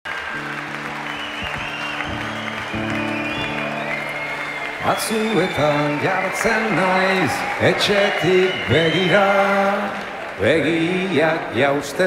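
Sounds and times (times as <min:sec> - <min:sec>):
audience applauding: 0:00.0 - 0:12.0
live band playing chords: 0:00.1 - 0:06.9.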